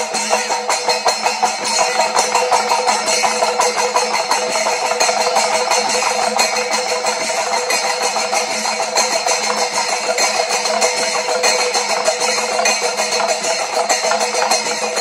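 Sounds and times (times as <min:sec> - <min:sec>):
hand cymbals clashing: 0:00.0 - 0:15.0
hand drums struck rapidly: 0:00.0 - 0:15.0.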